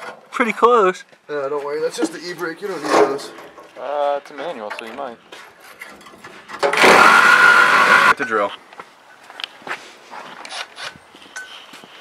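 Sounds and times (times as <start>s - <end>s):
power tool whining: 6.6s - 8.1s.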